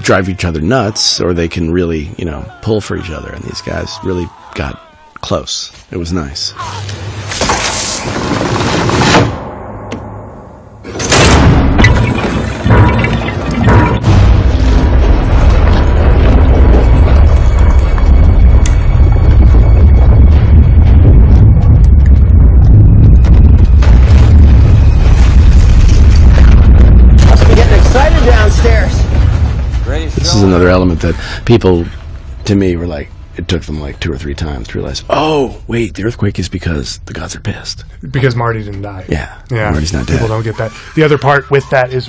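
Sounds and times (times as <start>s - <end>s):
deep earthquake rumble: 10.8s - 38.0s.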